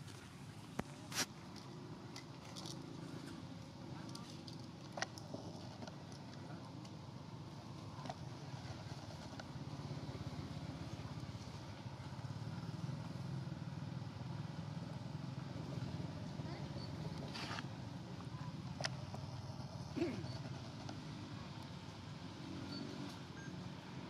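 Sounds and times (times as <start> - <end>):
motor engine running: 0.0 - 24.0.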